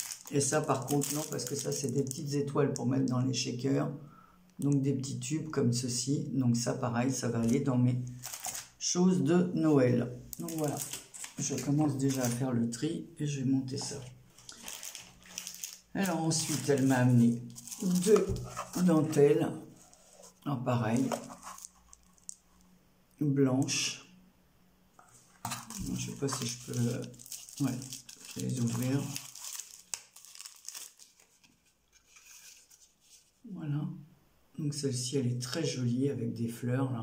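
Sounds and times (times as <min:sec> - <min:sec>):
light clicks of plastic packets: 0:00.0 - 0:02.2, 0:08.2 - 0:08.8, 0:10.3 - 0:12.4, 0:13.8 - 0:19.2, 0:20.8 - 0:22.4, 0:25.0 - 0:32.8
faint rustling of packets: 0:00.0 - 0:03.2, 0:07.2 - 0:08.8, 0:10.3 - 0:12.8, 0:13.6 - 0:22.7, 0:25.0 - 0:33.5.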